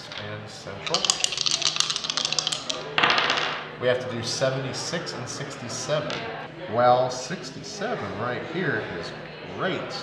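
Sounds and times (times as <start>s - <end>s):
dice clattering on wooden table: 0.1s - 3.6s.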